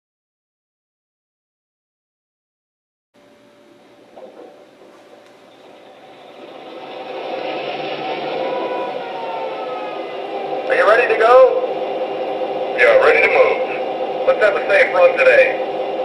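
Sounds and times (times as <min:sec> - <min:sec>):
radio-style crew voice: 0:10.6 - 0:11.7, 0:12.8 - 0:15.6.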